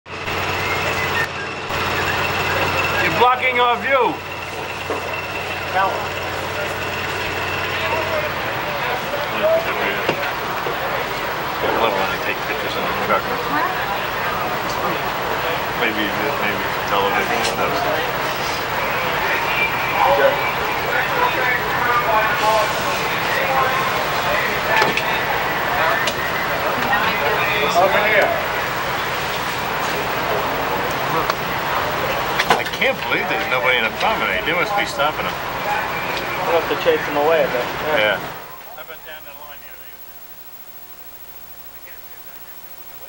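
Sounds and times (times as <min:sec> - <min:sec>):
engine and traffic noise: 0:00.1 - 0:43.0
people talking: 0:00.3 - 0:43.0.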